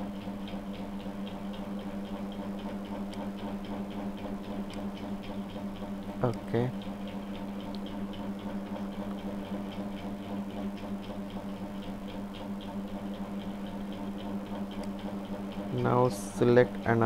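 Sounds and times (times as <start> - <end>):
low background hum: 0.0 - 17.0
faint regular ticking: 0.2 - 17.0.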